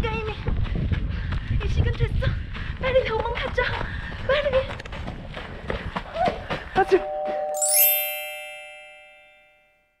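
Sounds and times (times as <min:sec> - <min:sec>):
bell-like chime: 0:06.9 - 0:10.0.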